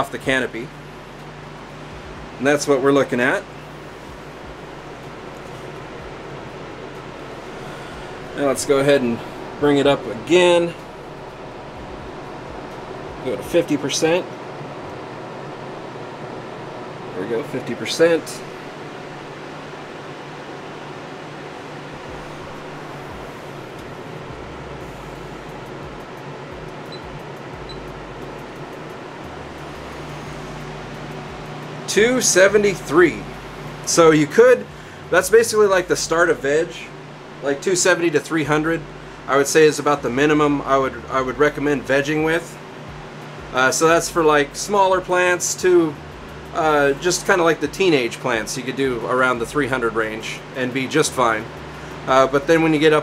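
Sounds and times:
fan whirring: 0.0s - 53.0s
low hum: 0.0s - 53.0s
ventilation hiss: 0.0s - 53.0s.

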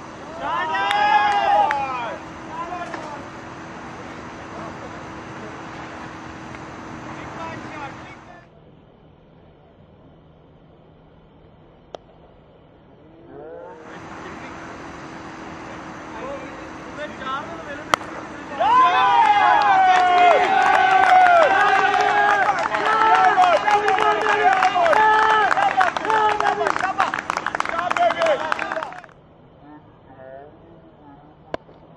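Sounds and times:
crowd shouting and cheering: 0.0s - 8.4s, 13.7s - 29.2s
murmur of voices: 0.0s - 8.5s, 13.2s - 31.5s
cricket bat striking ball: 16.9s - 28.5s.

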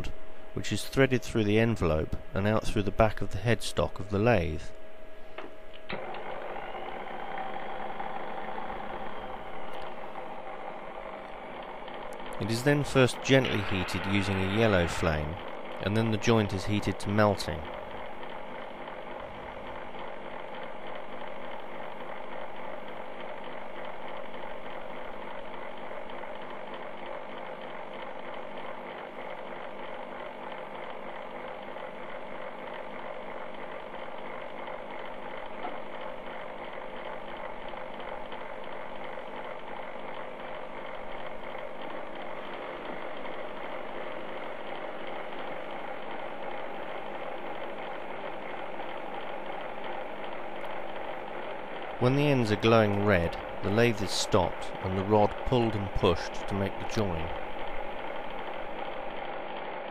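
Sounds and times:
lathe motor humming: 0.0s - 59.9s
butane torch burning: 6.0s - 22.1s, 39.4s - 59.9s.

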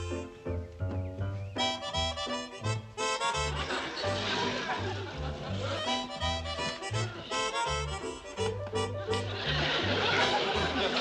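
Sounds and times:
bouncy comedic music: 0.0s - 11.0s.

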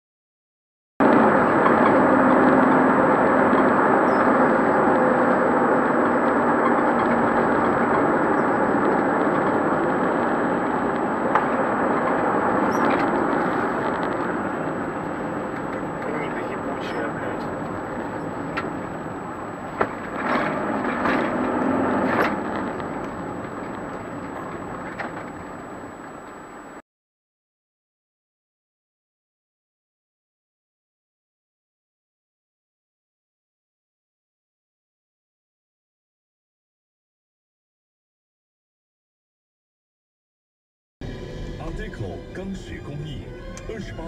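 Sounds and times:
road and engine noise in car: 1.0s - 26.8s, 41.0s - 44.0s.

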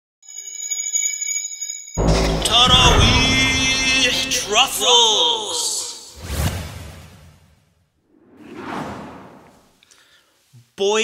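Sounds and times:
low boom: 2.0s - 4.9s
whoosh sound effects: 8.1s - 9.8s.

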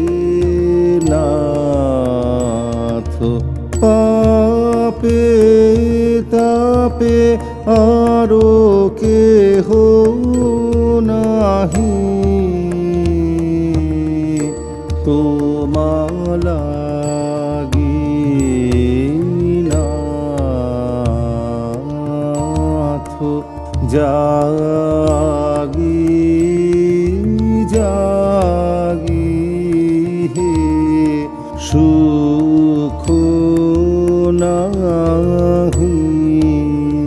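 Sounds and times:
man singing long held notes: 0.0s - 37.0s
melodic instrumental accompaniment: 0.0s - 37.0s
tabla drumming: 0.0s - 37.0s
hand cymbals: 10.2s - 37.0s.

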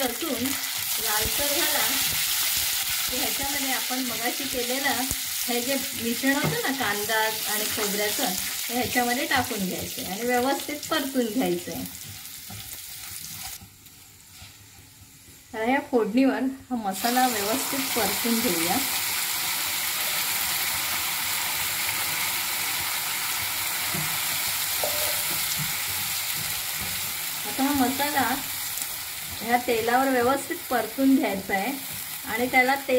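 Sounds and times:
spices sizzling in hot oil: 0.0s - 32.9s
spatula scraping and stirring: 11.9s - 15.0s, 23.9s - 32.8s.

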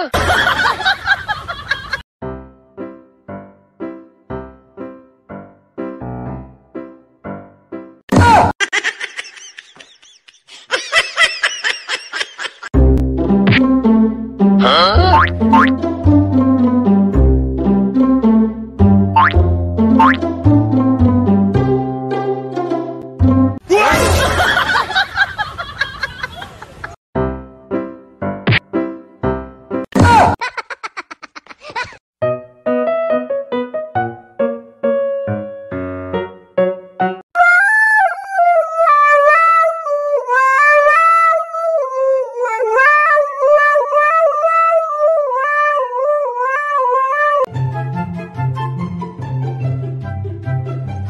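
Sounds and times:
playful plucked background music: 12.8s - 24.6s, 47.5s - 51.0s
boing-like upward glides: 13.4s - 13.8s, 14.6s - 15.8s, 19.2s - 20.3s
dog howling into microphone: 37.4s - 47.5s.

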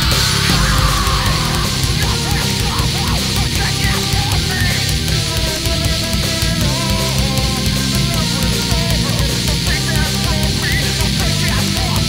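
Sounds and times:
heavy metal band playing: 0.0s - 12.0s
high repeating guitar notes: 0.0s - 12.0s.

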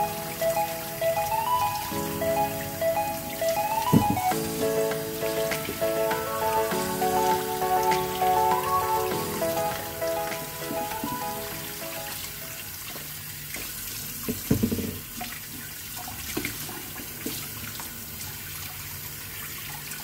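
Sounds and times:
soft background music: 0.0s - 12.8s.

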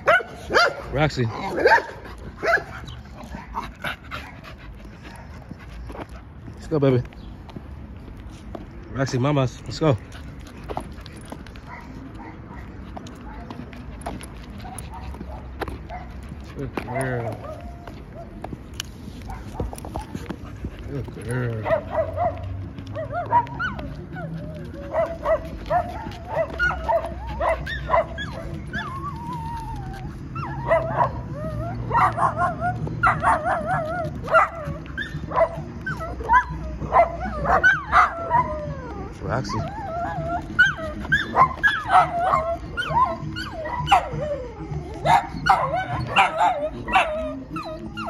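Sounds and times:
dog whining and yelping: 0.0s - 6.0s, 9.9s - 48.0s.

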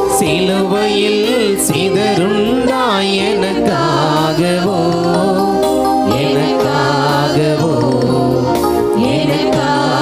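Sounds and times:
person singing a hymn: 0.0s - 10.0s
sustained accompaniment: 0.0s - 10.0s.

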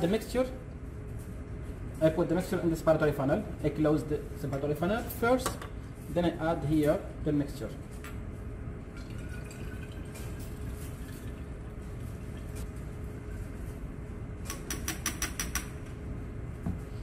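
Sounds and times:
liquid pouring into funnel: 8.9s - 12.6s.

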